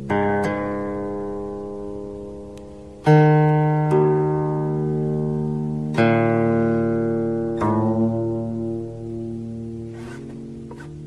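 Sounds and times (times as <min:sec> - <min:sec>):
plucked string instrument music: 0:00.0 - 0:11.0.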